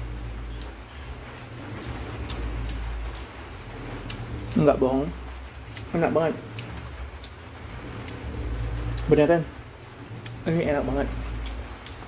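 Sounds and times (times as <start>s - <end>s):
steady low rumble: 0.0s - 12.0s
person chewing food: 1.4s - 4.7s, 5.7s - 9.1s, 10.1s - 10.5s, 11.1s - 12.0s.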